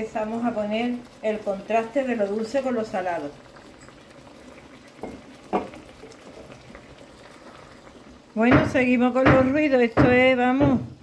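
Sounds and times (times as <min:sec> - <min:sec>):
low bubbling in a pan: 0:00.0 - 0:11.0.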